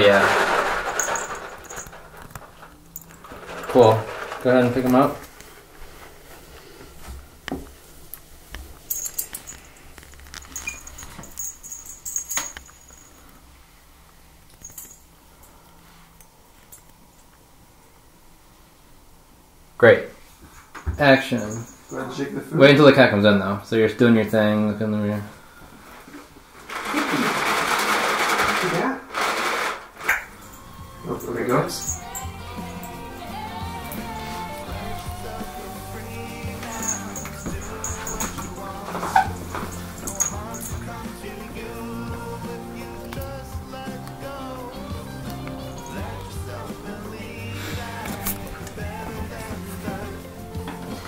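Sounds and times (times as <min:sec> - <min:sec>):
light metallic jingle: 0:00.0 - 0:05.2, 0:08.8 - 0:13.4, 0:14.5 - 0:15.6, 0:21.0 - 0:22.6, 0:30.3 - 0:51.0
dry cat food rattling: 0:00.0 - 0:05.3, 0:26.7 - 0:30.6, 0:34.0 - 0:44.1
knocks and rustling: 0:00.0 - 0:06.2.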